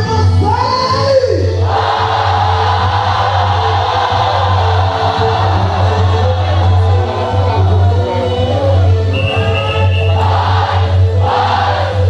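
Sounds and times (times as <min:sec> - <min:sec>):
crowd shouting: 0:01.6 - 0:12.0
dance music with bass line: 0:01.8 - 0:12.0.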